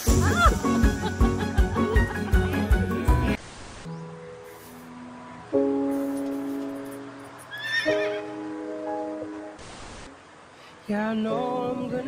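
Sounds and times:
soundtrack music chords: 0.0s - 3.4s, 4.0s - 9.6s
horse whinnying: 7.5s - 8.3s.

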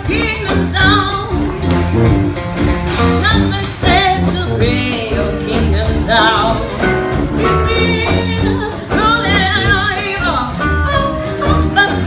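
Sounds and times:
woman singing with vibrato: 0.0s - 1.8s, 3.0s - 12.0s
jazz band playing: 0.0s - 12.0s.

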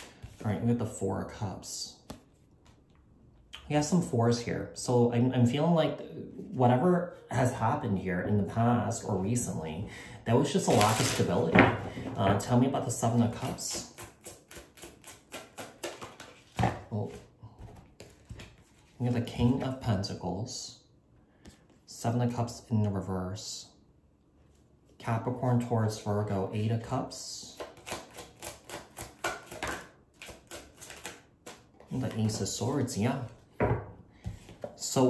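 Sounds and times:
cards being shuffled: 2.0s - 2.9s, 10.6s - 12.4s, 13.1s - 19.6s, 27.6s - 33.0s, 34.4s - 34.8s.

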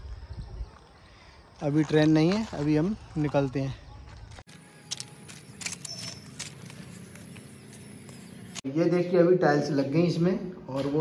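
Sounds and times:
footsteps crunching on stones: 1.5s - 8.6s.

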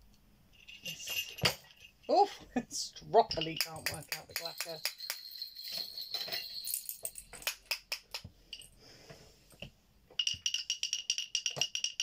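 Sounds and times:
bells shaken rhythmically: 0.5s - 8.7s, 10.2s - 12.0s
wooden clacker clicking: 3.3s - 5.3s, 7.3s - 8.7s, 10.2s - 12.0s.

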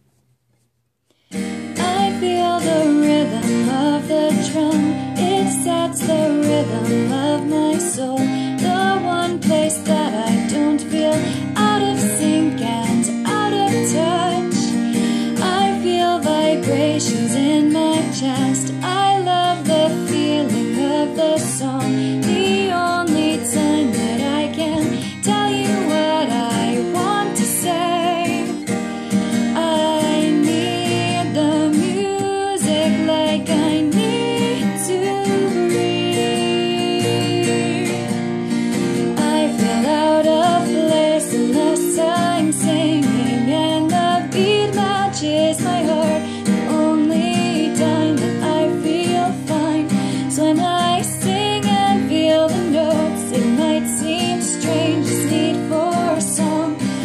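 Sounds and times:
acoustic guitar: 0.0s - 57.0s
woman singing pop ballad: 1.6s - 57.0s.

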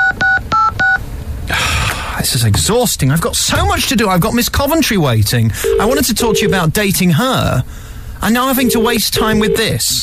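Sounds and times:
keypad dialling beeps: 0.0s - 1.0s, 5.6s - 6.6s, 8.6s - 9.7s
breathy noise: 1.5s - 2.3s.

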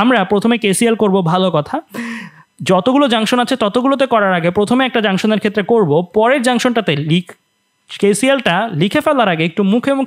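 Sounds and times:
person speaking in a lecture: 0.0s - 10.0s.

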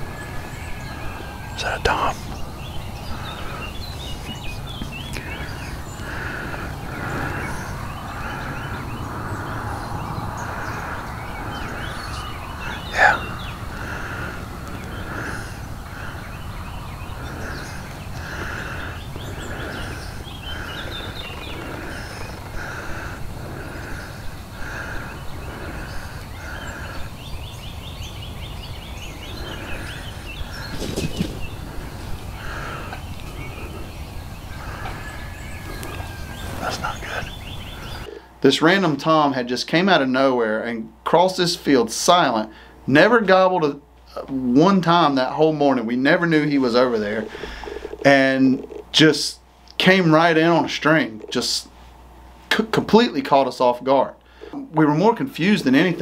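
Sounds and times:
pulsing bird call: 0.0s - 38.2s
dawn chorus: 0.0s - 56.0s
wild turkey gobbling: 29.1s - 38.2s, 46.8s - 48.9s.

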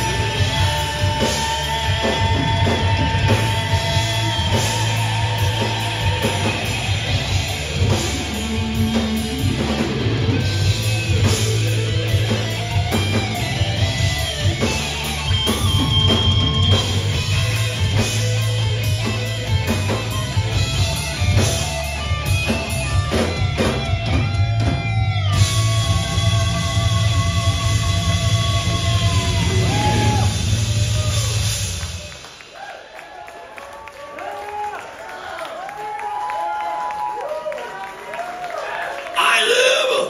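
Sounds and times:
lead guitar line with pitch bends: 0.0s - 30.3s
thrash metal band playing: 0.0s - 32.2s.

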